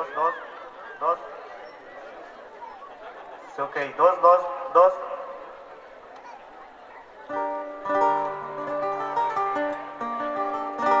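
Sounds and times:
acoustic guitars strumming: 0:07.3 - 0:11.0.

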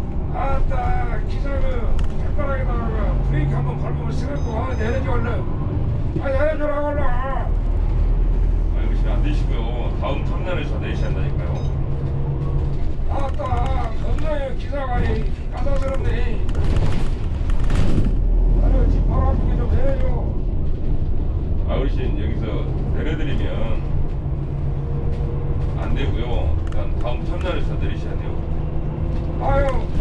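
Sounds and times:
coach engine and road rumble: 0:00.0 - 0:30.0
burst of noise with deep rumble: 0:07.4 - 0:30.0.

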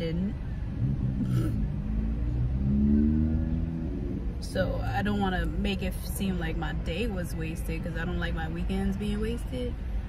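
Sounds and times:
car engine rumbling inside cabin: 0:00.0 - 0:10.0.

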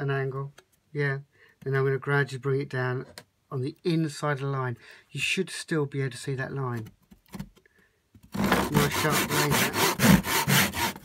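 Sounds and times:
hand saw strokes on wood: 0:08.4 - 0:11.0.

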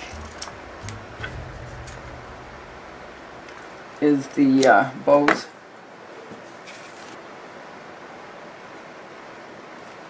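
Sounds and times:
faint low hum: 0:00.0 - 0:04.3
even hiss: 0:00.0 - 0:04.6.

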